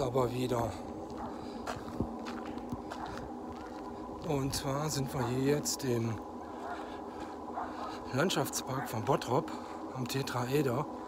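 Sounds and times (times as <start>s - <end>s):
footsteps on path: 0.0s - 10.2s
faint background hum: 0.0s - 11.0s.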